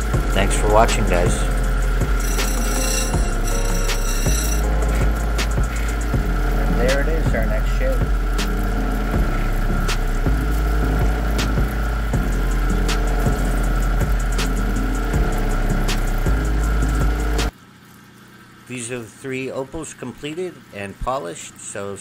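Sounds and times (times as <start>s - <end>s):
grinding machine running: 2.2s - 4.9s.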